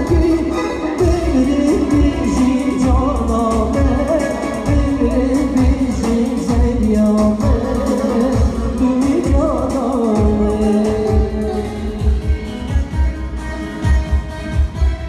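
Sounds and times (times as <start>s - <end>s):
man singing into microphone: 0.0s - 12.9s
keyboard: 0.0s - 15.0s
low drum beat: 0.0s - 15.0s.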